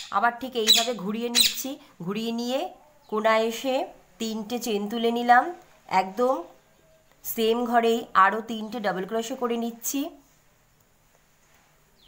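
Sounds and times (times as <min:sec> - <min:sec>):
woman talking: 0:00.1 - 0:06.6, 0:07.3 - 0:10.2.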